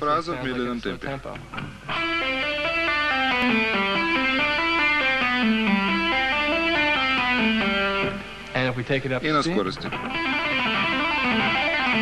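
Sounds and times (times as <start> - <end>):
electric guitar rock lick: 1.4 - 8.6, 9.9 - 12.0.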